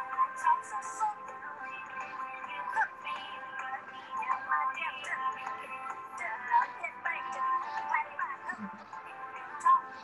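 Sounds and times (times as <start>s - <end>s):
music with sung vocals: 0.0s - 10.0s.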